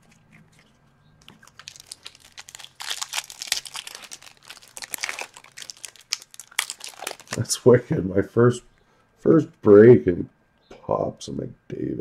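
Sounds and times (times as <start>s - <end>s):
foil wrapper crinkling: 0.0s - 7.5s.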